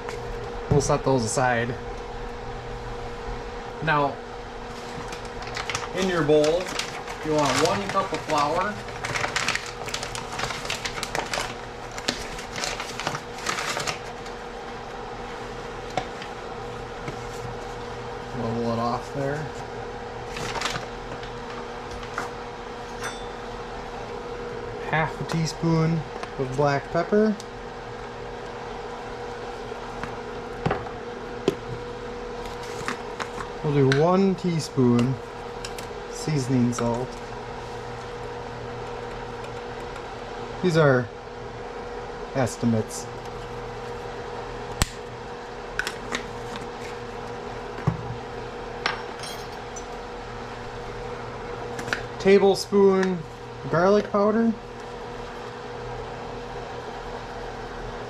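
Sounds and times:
low hum with faint tone: 0.0 - 58.0.

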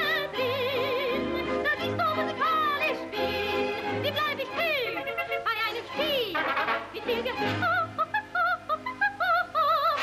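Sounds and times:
dance band accompaniment: 3.0 - 7.5.

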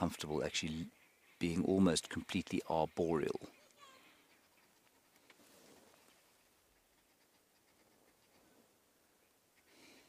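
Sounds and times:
faint ticks: 4.8 - 8.6.

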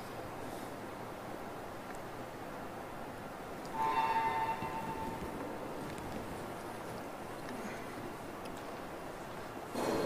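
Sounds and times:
echoing church room noise: 3.7 - 5.9.

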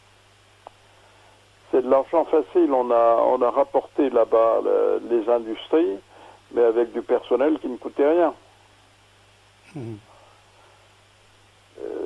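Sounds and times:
faint low hum and hiss: 0.0 - 12.0
man saying euh: 9.7 - 10.1.

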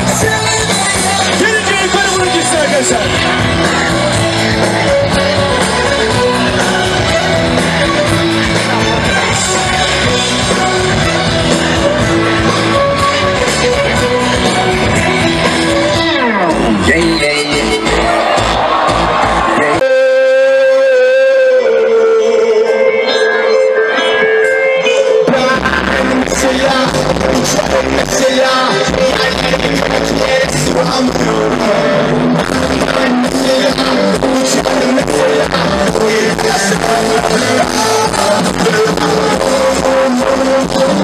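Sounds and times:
live pop band music: 0.0 - 41.0.

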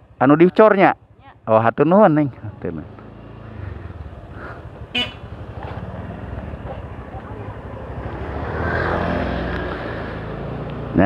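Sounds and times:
motorcycle engine running: 1.0 - 11.0.

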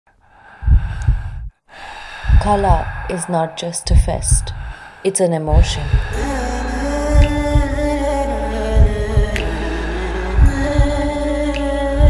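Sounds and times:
breathy rush of air: 0.3 - 3.8, 4.5 - 5.1, 5.8 - 11.7
deep rumble: 0.6 - 1.5, 2.3 - 3.1, 3.9 - 4.8, 5.5 - 12.0.

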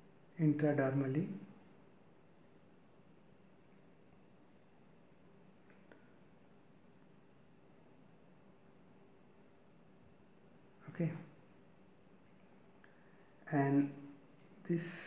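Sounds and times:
cricket trill: 0.0 - 15.0.

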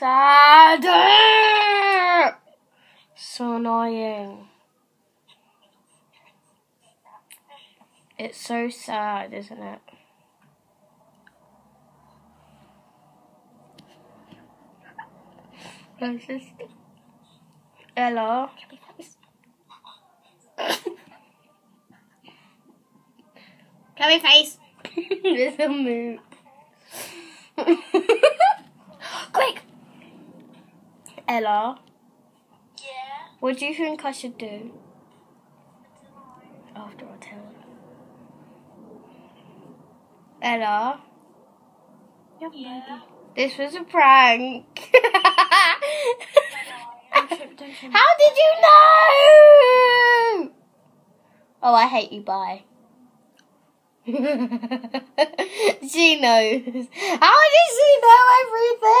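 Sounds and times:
girl giggling: 24.8 - 25.6, 44.8 - 47.6.

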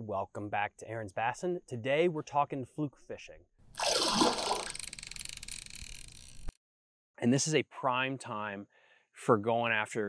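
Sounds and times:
water splash: 3.7 - 4.8.

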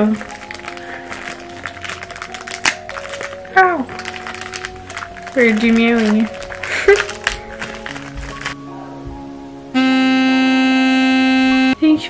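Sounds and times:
plastic bag crinkling: 0.0 - 8.6.

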